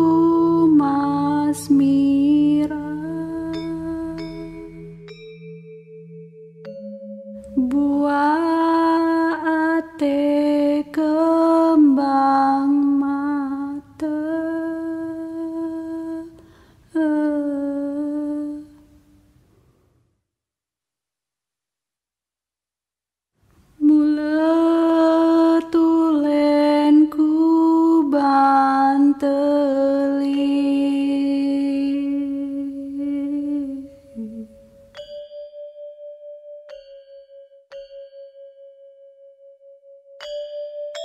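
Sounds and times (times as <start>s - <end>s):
woman humming: 0.0s - 5.0s, 29.4s - 34.9s
woman humming a lullaby: 0.0s - 5.0s, 7.4s - 18.8s, 23.8s - 35.1s
steady ringing drone: 0.0s - 9.8s.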